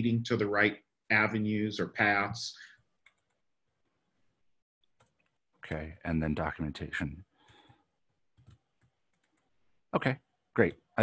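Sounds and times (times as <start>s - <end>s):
computer keyboard clicks: 3.0s - 3.4s, 8.4s - 9.5s
person speaking: 10.0s - 11.0s.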